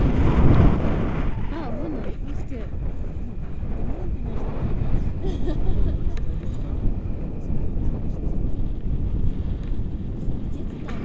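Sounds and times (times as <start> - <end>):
wind buffeting microphone: 0.0 - 11.0
faint voices: 1.4 - 11.0.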